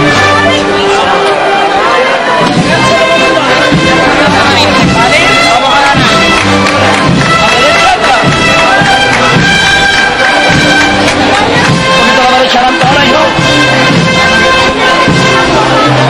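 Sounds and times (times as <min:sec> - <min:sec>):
brass band playing a march: 0:00.0 - 0:16.0
crowd voices: 0:00.0 - 0:16.0.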